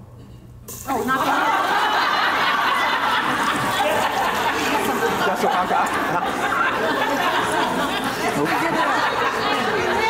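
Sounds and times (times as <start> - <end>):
overlapping chatter: 0.9 - 10.0
people laughing: 1.1 - 10.0.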